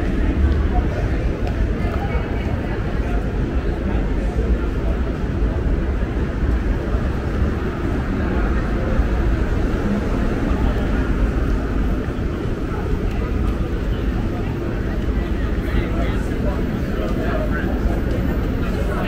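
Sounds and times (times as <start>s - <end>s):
low street rumble: 0.0s - 19.0s.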